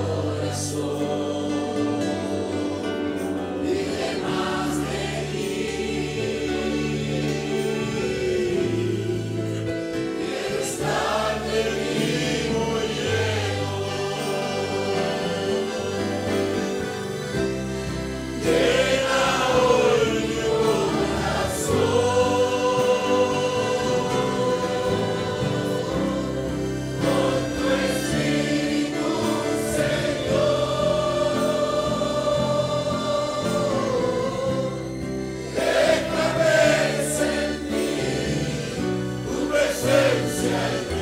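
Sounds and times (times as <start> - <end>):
congregation singing worship chorus: 0.0 - 41.0
low musical accompaniment: 0.0 - 41.0.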